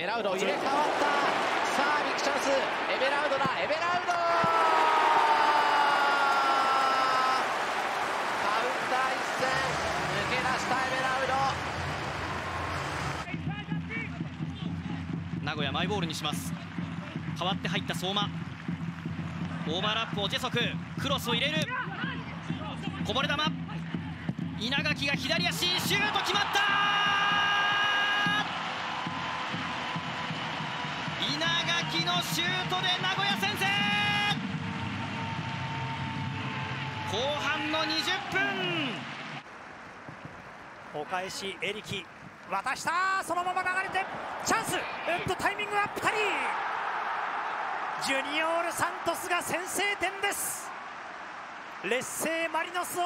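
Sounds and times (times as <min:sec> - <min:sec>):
stadium crowd noise: 0:00.0 - 0:53.0
commentator shouting: 0:25.2 - 0:28.4.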